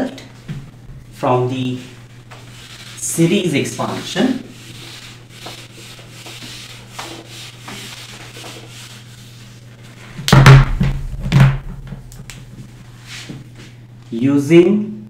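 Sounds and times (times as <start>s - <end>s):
duster rubbing on whiteboard: 1.2s - 10.2s, 12.6s - 13.4s.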